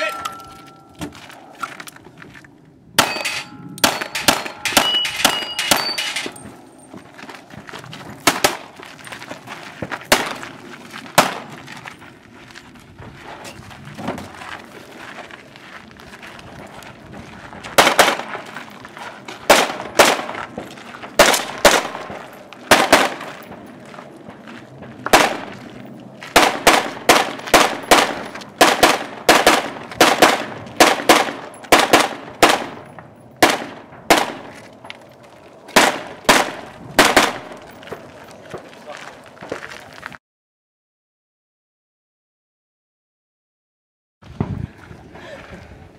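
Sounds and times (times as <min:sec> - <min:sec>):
gunshots: 0:03.0 - 0:06.4, 0:08.2 - 0:08.7, 0:10.1 - 0:10.4, 0:11.2 - 0:11.5, 0:17.8 - 0:18.4, 0:19.4 - 0:20.4, 0:21.2 - 0:23.4, 0:25.1 - 0:25.5, 0:26.3 - 0:34.6, 0:35.7 - 0:37.6.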